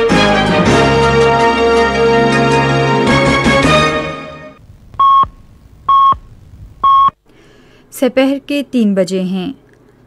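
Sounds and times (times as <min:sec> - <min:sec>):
radio time signal beeps: 0:05.0 - 0:07.2.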